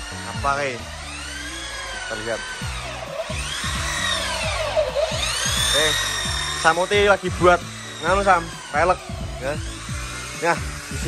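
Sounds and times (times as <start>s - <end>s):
background music with bass beat: 0.0s - 11.0s
electric drill motor whine: 0.0s - 11.0s.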